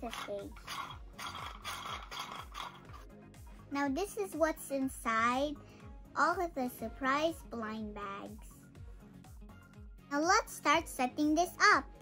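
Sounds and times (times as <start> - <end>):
plastic toy scraping and rattling: 0.0 - 3.1.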